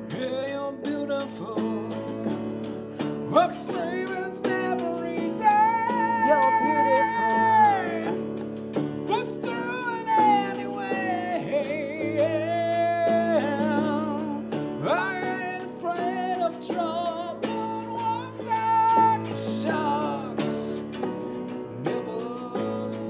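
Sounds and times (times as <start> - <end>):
electric guitar: 0.0 - 23.0
keyboard chords: 0.0 - 23.0
person singing with vibrato: 0.0 - 23.0.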